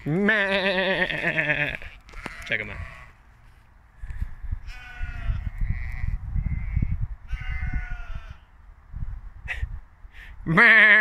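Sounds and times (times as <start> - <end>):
sheep bleating: 0.0 - 3.2, 4.7 - 8.5
wind rumble on microphone: 4.0 - 10.5.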